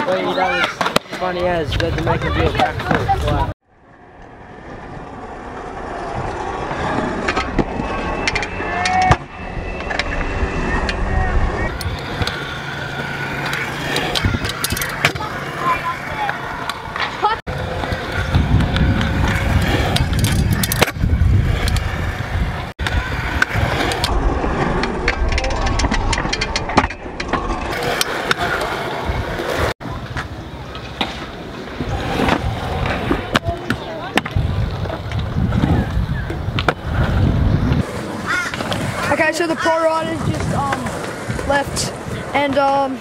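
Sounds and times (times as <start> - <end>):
voices: 0.0 - 3.6, 5.8 - 21.0, 29.6 - 36.8, 37.8 - 43.0
scooter wheels rolling on concrete: 0.0 - 43.0.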